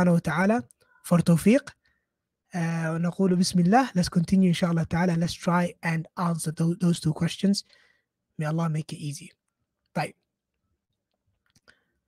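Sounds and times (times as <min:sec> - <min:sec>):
man speaking: 0:00.0 - 0:01.8, 0:02.5 - 0:07.6, 0:08.4 - 0:10.3.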